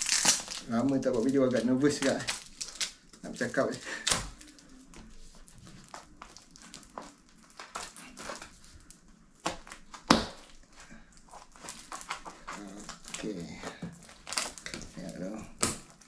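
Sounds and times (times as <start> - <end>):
tape crinkling and tearing: 0.0 - 16.0.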